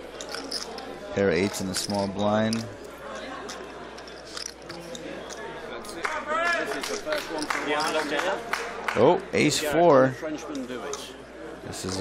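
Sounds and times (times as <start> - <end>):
murmur of voices: 0.0 - 12.0
poker chips clicking: 0.1 - 8.2.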